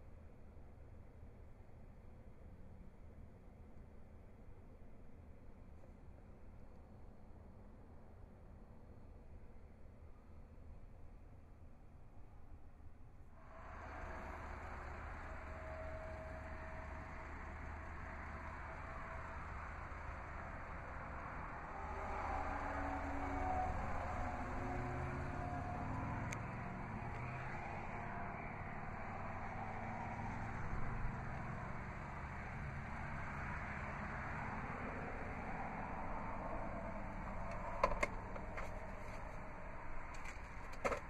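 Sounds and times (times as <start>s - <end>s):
road traffic noise: 13.4s - 41.0s.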